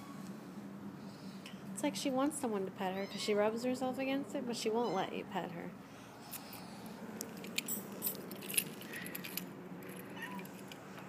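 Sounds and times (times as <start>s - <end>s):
light jingling: 6.3s - 10.8s.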